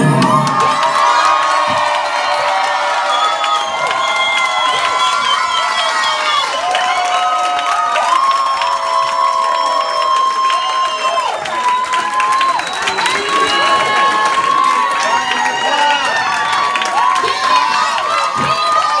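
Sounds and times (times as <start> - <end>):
crowd cheering: 0.0 - 19.0
hands clapping: 0.0 - 19.0.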